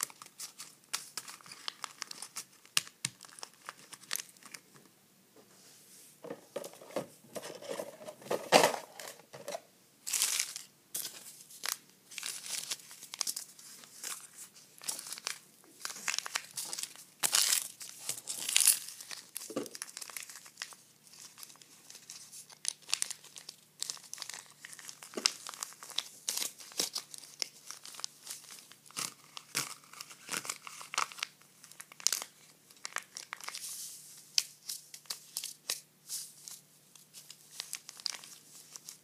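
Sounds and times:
packets crinkling and rustling: 0:00.0 - 0:04.6, 0:06.6 - 0:39.0.

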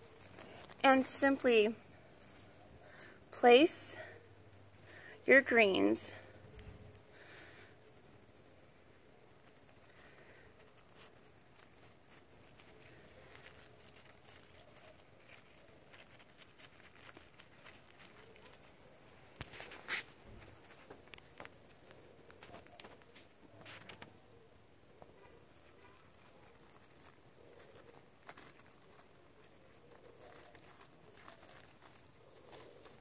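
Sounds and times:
paper and leaves crinkling: 0:00.0 - 0:33.0.

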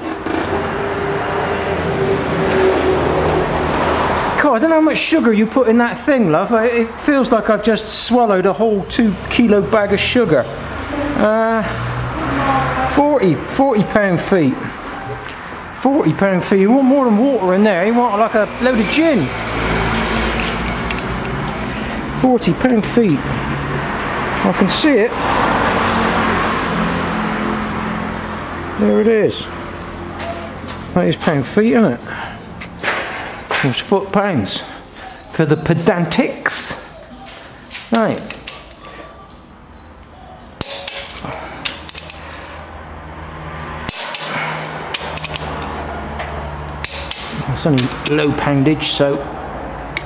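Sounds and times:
torque wrench metallic clicks: 0:40.6 - 0:42.3, 0:43.9 - 0:45.7, 0:46.7 - 0:48.2.

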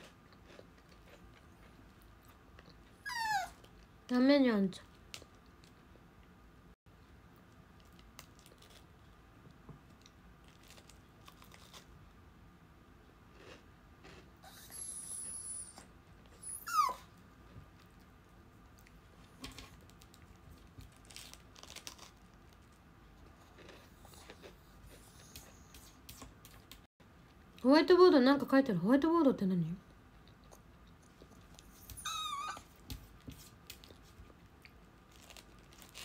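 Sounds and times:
dog whining: 0:03.0 - 0:03.7, 0:14.4 - 0:17.1, 0:31.6 - 0:32.8.

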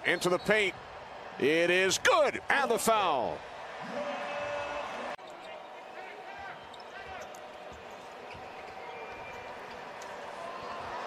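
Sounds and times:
sneaker squeaks: 0:06.6 - 0:09.8.

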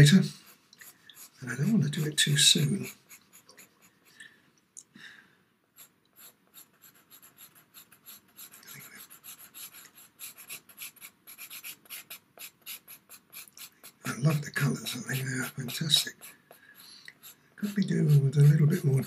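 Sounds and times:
pastel pencil scratching on paper: 0:00.0 - 0:04.1, 0:05.8 - 0:19.0.

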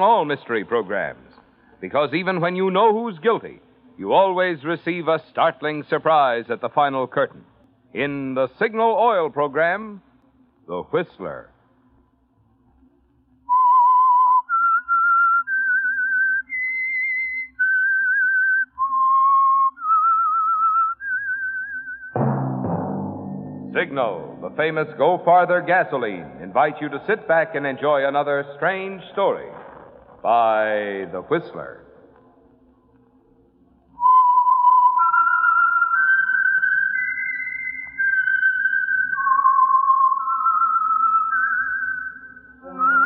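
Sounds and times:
person whistling eerie melody: 0:13.5 - 0:22.2, 0:34.0 - 0:43.0.

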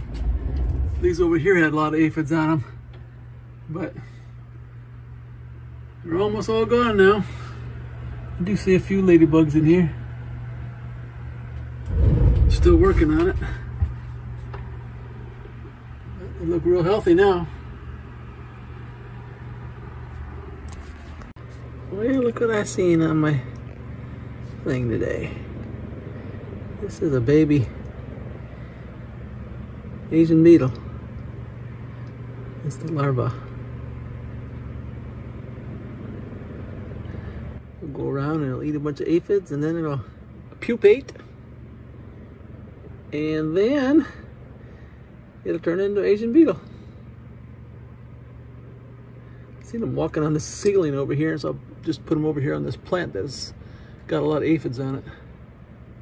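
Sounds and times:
low machinery hum: 0:00.0 - 0:56.0.

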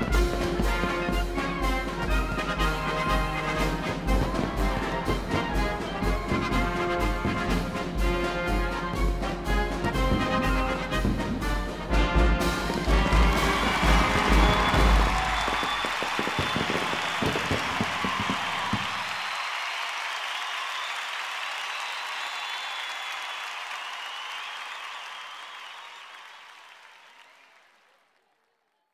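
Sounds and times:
fireworks booming: 0:00.0 - 0:08.0, 0:09.8 - 0:19.3
crowd applauding and cheering: 0:00.0 - 0:28.9.

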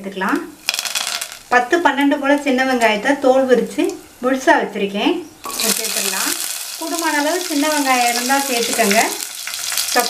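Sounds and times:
shallots sizzling in hot oil: 0:00.1 - 0:02.6, 0:05.4 - 0:10.0.

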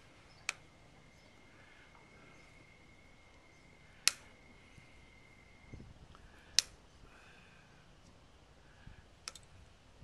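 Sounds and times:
hoof nippers snapping: 0:00.4 - 0:00.6, 0:04.0 - 0:04.3, 0:06.1 - 0:06.8, 0:09.2 - 0:09.5.

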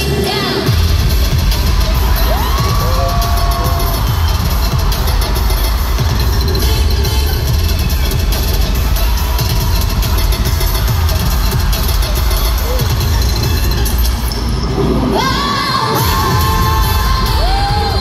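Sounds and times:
pop song over sound system: 0:00.0 - 0:18.0
crowd cheering: 0:00.7 - 0:18.0.

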